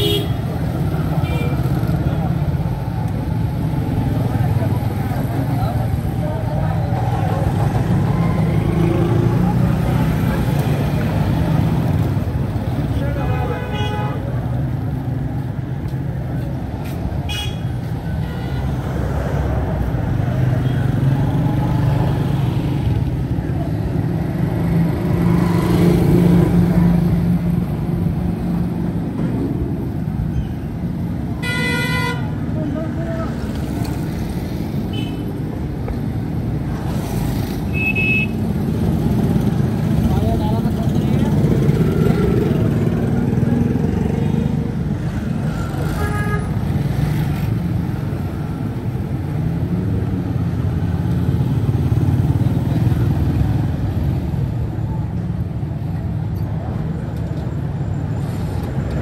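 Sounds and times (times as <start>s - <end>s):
motorcycles and rickshaws passing: 0.0s - 59.0s.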